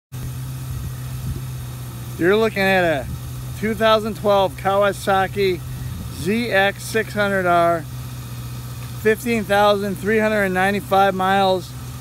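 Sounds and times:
motorcycle engine idling: 0.2 - 12.0.

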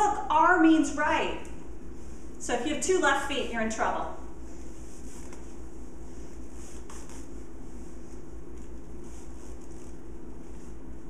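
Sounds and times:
low room hum: 0.0 - 11.0
soft fabric rustles: 4.4 - 11.0.

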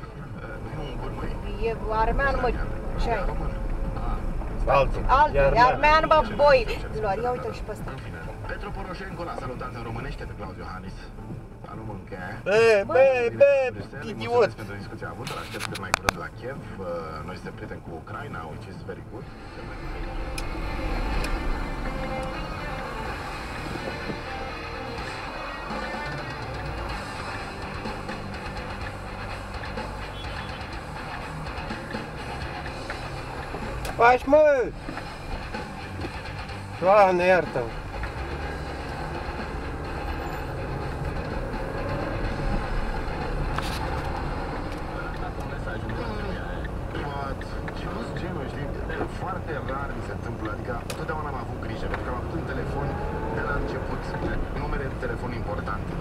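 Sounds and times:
car engine rumble: 0.0 - 56.0
music playing: 0.0 - 56.0
road noise: 0.0 - 56.0.

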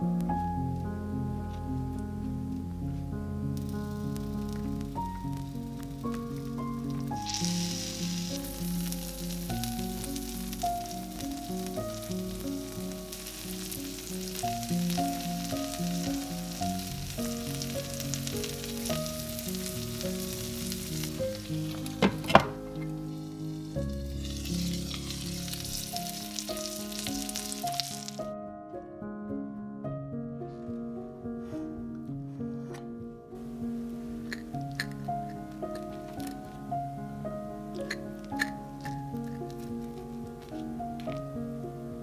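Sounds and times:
background music: 0.0 - 42.0
food sizzling in a pan: 3.5 - 28.3.

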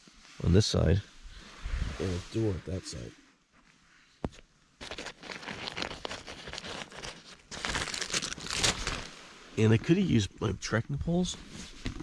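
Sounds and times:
fabric rustling and crinkling: 4.8 - 9.4.

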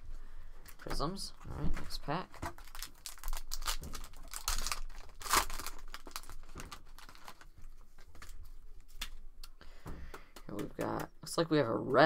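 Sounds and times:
foil wrapper crinkling and tearing: 1.8 - 9.2.

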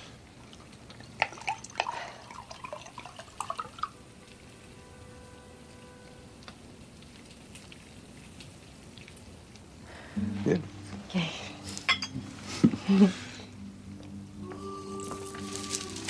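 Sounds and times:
small sharp clicks and drips: 0.2 - 4.7, 5.6 - 10.0.

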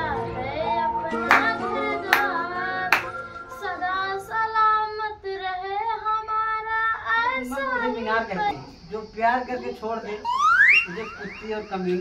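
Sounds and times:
high singing voice: 1.0 - 4.7.

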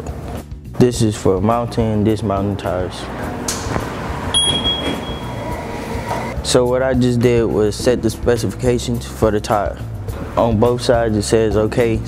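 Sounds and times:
wheel balancer whirring: 2.6 - 6.4
high steady tone: 4.3 - 6.1.

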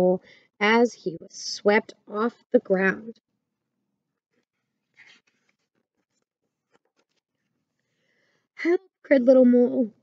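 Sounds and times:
paper page turning: 5.0 - 7.2.

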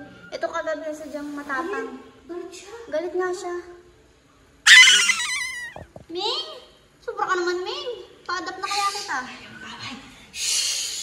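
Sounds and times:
angry cat crying and hissing: 4.7 - 5.8.

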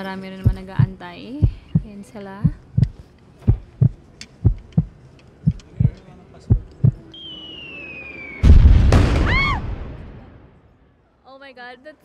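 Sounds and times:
deep thumps in pairs: 0.4 - 4.9
high falling whistle: 7.1 - 9.7
loud firework explosion: 7.6 - 10.6.

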